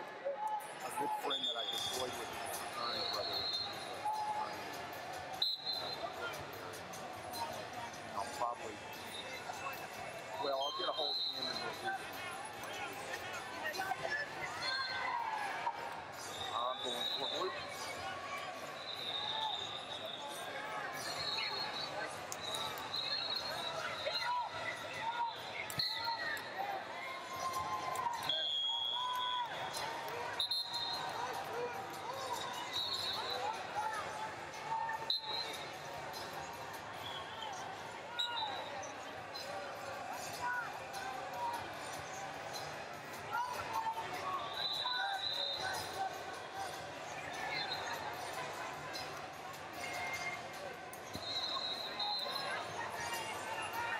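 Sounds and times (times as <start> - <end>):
referee whistles: 0.9 - 4.5, 5.4 - 6.2, 10.4 - 11.9, 16.2 - 17.8, 18.6 - 26.5, 27.8 - 31.3, 32.2 - 33.7, 34.9 - 36.2, 37.0 - 39.5, 43.6 - 46.0, 47.3 - 48.3, 51.0 - 52.8.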